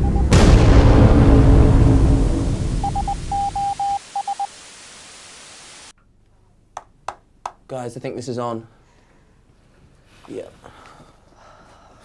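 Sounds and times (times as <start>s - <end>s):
morse code beeps: 0.0s - 0.3s, 2.8s - 4.5s
static hiss: 2.2s - 6.0s.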